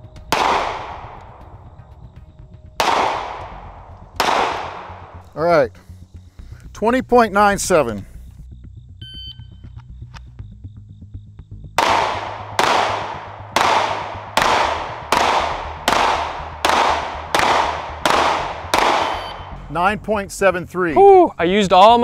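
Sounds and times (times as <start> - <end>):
pistol shots with echo: 0.1 - 1.8, 2.8 - 5.2, 11.8 - 19.6.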